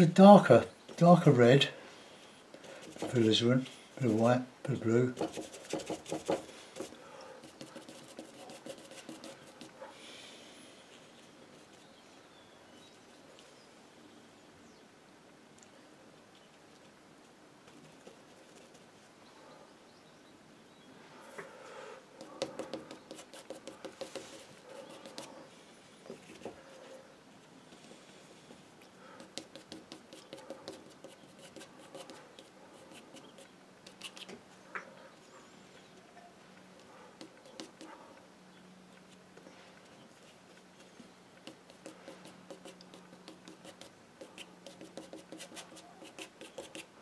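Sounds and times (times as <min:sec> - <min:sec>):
paintbrush dabbing on paper: 0:02.8 - 0:03.4, 0:05.1 - 0:09.8, 0:22.2 - 0:25.4, 0:29.2 - 0:34.3, 0:37.2 - 0:38.0, 0:41.4 - 0:46.9.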